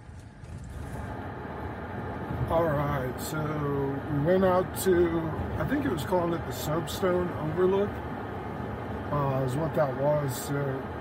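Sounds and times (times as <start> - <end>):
car cabin engine and road rumble: 0.0 - 11.0.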